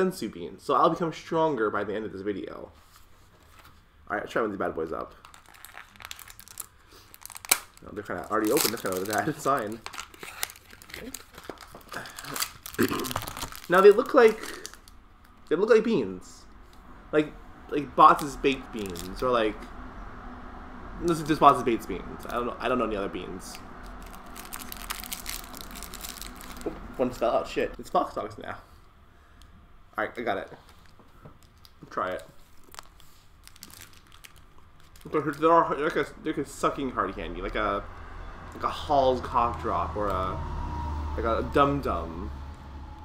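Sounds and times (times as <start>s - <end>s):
candy packaging crinkling: 5.1s - 15.7s, 18.1s - 19.3s, 23.5s - 27.2s, 30.6s - 36.0s.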